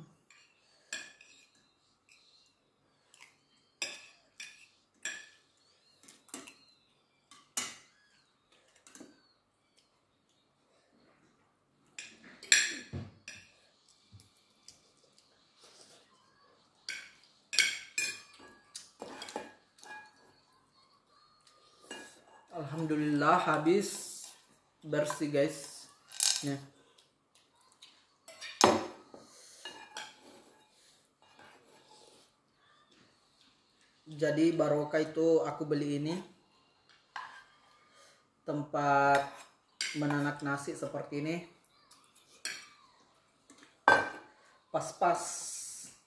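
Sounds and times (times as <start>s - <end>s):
cutlery clinking on plates: 0.2s - 2.5s, 3.1s - 6.7s, 7.3s - 9.3s, 11.9s - 14.8s, 16.8s - 20.4s, 21.8s - 22.5s, 28.2s - 31.8s, 37.1s - 37.7s, 42.3s - 42.8s, 43.5s - 44.4s.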